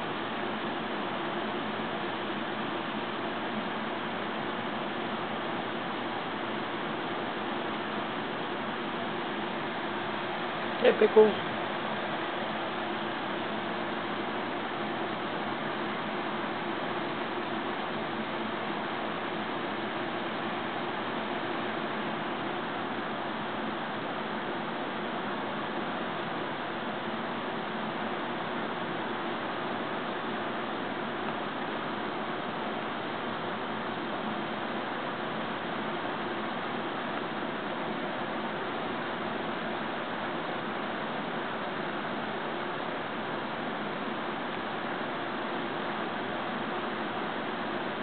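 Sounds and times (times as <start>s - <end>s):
electric box fan running: 0.0s - 48.0s.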